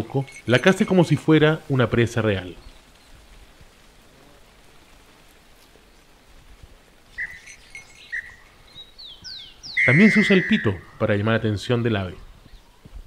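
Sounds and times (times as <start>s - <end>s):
faint outdoor hiss: 0.0s - 13.0s
high falling chirps: 7.1s - 11.5s
whistle blasts: 9.7s - 11.0s.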